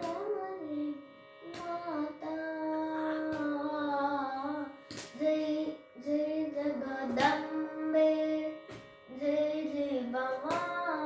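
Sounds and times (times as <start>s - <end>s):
hand slapping thigh: 0.0s - 0.3s, 1.5s - 2.0s, 3.2s - 3.8s, 4.8s - 5.2s, 7.1s - 7.6s, 8.7s - 8.9s, 10.3s - 11.0s
boy singing unaccompanied: 0.0s - 11.0s.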